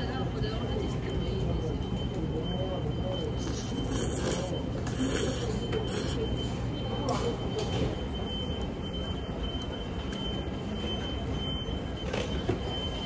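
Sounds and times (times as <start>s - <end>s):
indoor hall background din: 0.0s - 13.0s.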